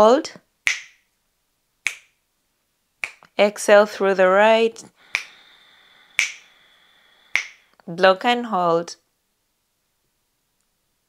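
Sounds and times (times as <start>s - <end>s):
finger snaps: 0.7s - 1.0s, 1.8s - 2.1s, 3.0s - 3.3s, 5.1s - 5.4s, 6.2s - 6.5s, 7.3s - 7.6s.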